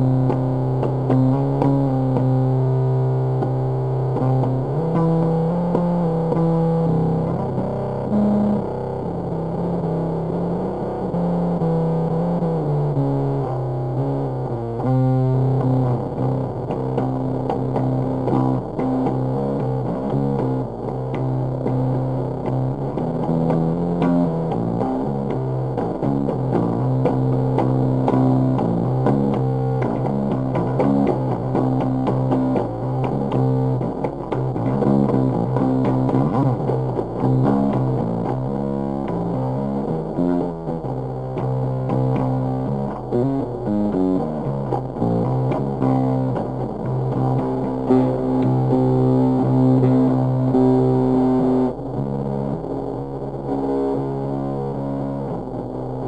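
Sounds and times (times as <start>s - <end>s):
distorted fuzz bass riff: 0.0s - 56.0s.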